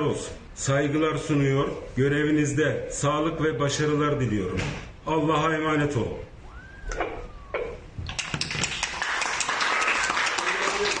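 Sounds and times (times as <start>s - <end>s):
group of people clapping: 8.1s - 11.0s.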